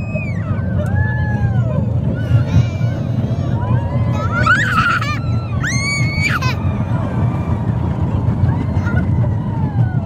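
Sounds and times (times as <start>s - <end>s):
rollercoaster rumble: 0.0s - 10.0s
wind buffeting microphone: 0.0s - 10.0s
child squealing: 4.2s - 6.6s.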